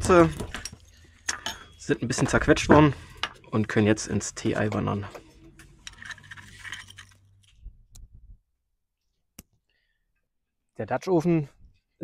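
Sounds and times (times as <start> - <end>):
stone mortar and metal infuser clinking: 0.0 - 7.6.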